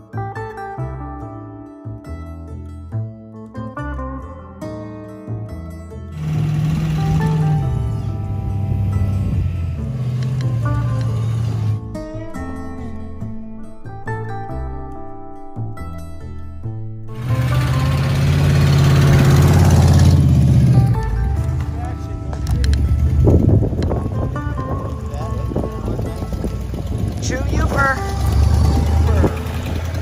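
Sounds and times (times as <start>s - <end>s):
plucked background music: 0.0s - 30.0s
truck plow pushing through snow: 6.2s - 11.8s, 17.2s - 23.6s, 25.5s - 30.0s.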